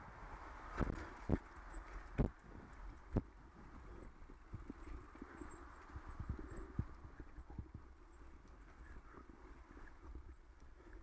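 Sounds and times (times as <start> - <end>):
wind noise: 0.0 - 10.9.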